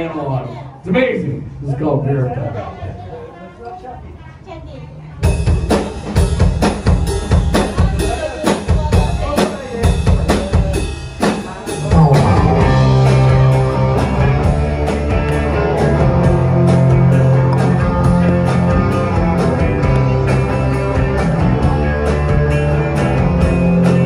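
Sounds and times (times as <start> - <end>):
drum kit beat: 5.2 - 24.0
bass and guitar held notes: 11.8 - 24.0.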